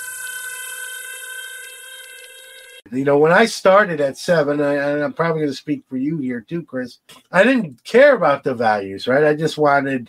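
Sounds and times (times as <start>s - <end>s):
hiss: 0.0s - 2.8s.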